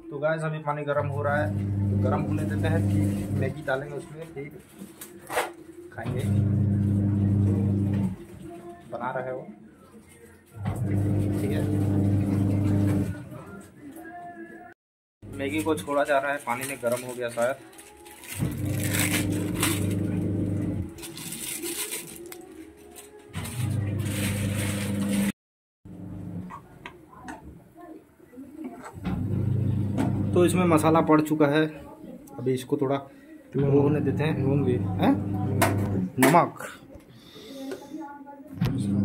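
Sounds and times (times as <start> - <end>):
plastic packet crinkling: 15.5 - 20.1, 20.9 - 25.2.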